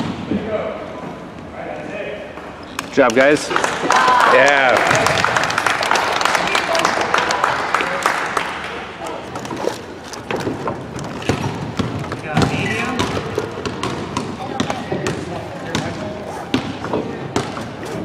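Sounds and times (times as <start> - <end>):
basketballs bouncing on wooden floor: 9.3 - 18.0.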